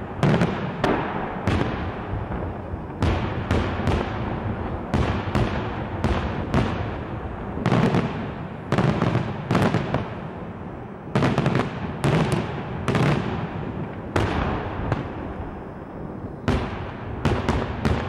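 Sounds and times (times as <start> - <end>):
fireworks bursting with loud bangs: 0.0 - 18.0.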